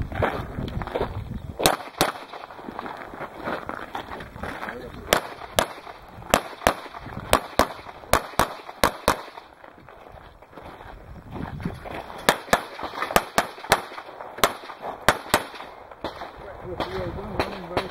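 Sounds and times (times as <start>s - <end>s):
rapid handgun shots: 1.6s - 2.7s, 5.1s - 9.6s, 12.2s - 17.9s.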